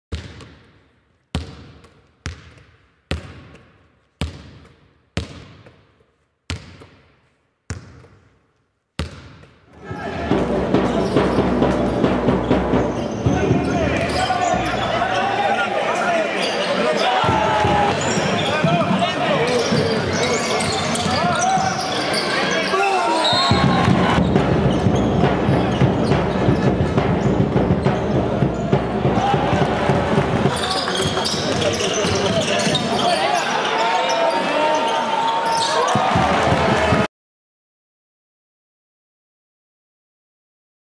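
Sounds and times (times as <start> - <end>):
basketball court noise: 0.1 - 37.1
crowd voices: 9.8 - 37.1.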